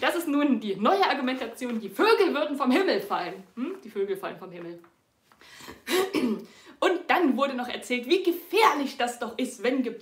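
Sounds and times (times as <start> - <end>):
woman speaking: 0.0 - 4.9, 6.8 - 10.0
woman clearing her throat: 5.8 - 6.5.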